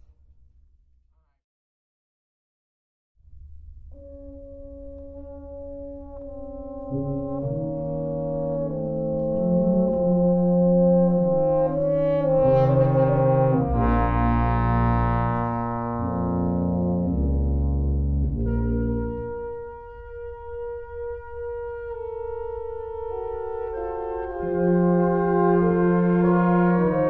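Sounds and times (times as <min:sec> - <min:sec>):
brass ensemble playing chords: 0:04.0 - 0:27.0.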